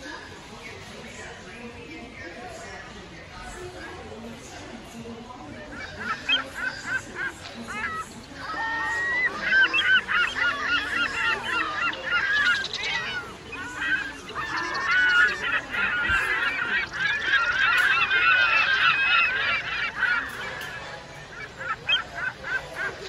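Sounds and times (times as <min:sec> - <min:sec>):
flock of birds calling: 0:00.0 - 0:23.0.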